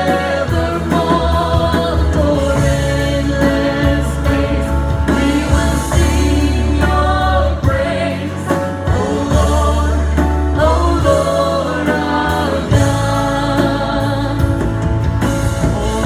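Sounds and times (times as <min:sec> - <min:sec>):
woman singing into microphone: 0:00.0 - 0:14.8
drums: 0:00.0 - 0:16.0
keyboard: 0:00.0 - 0:16.0.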